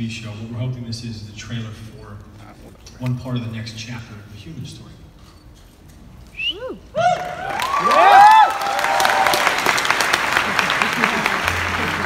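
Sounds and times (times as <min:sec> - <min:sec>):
hushed crowd: 0:06.3 - 0:12.0
person whooping: 0:06.4 - 0:09.5.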